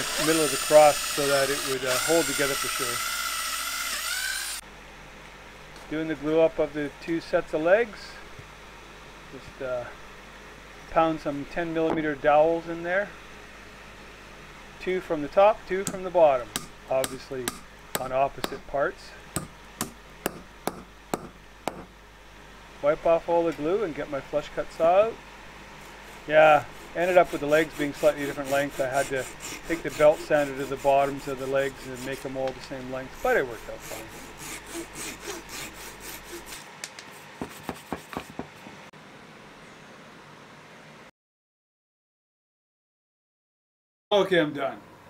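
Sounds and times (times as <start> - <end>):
saw rasping across wood: 0.0 - 4.6, 15.8 - 18.6, 25.8 - 38.5
hammer tapping wooden dowel: 19.4 - 21.9.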